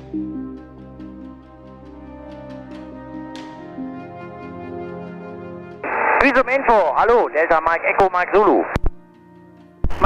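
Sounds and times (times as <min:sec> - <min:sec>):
music with sustained tones: 0:00.0 - 0:05.8, 0:09.0 - 0:09.9
radio hiss burst: 0:05.8 - 0:08.9
man talking over radio: 0:05.9 - 0:08.8.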